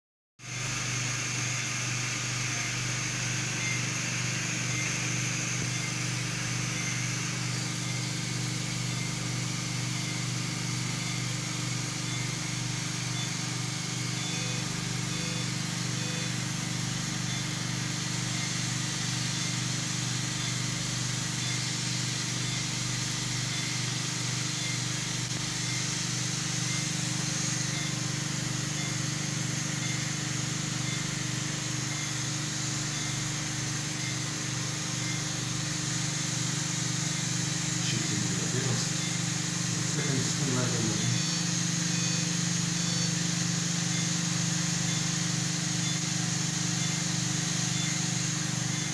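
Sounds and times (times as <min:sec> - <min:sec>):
equipment fans and pumps humming: 0:00.4 - 0:48.9
patient monitor beeps: 0:02.4 - 0:08.1, 0:09.5 - 0:16.6, 0:17.2 - 0:18.8, 0:20.4 - 0:20.7, 0:21.4 - 0:21.7, 0:22.4 - 0:25.0, 0:25.6 - 0:35.4, 0:36.2 - 0:45.2, 0:45.8 - 0:46.1, 0:46.7 - 0:48.9.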